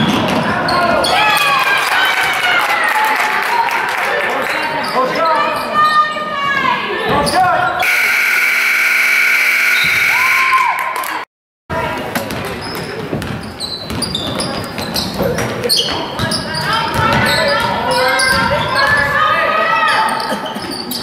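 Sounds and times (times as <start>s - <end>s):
players and crowd shouting: 5.3s - 10.9s, 16.9s - 20.2s
scoreboard horn: 7.8s - 10.7s
shoe squeaks: 12.6s - 18.9s.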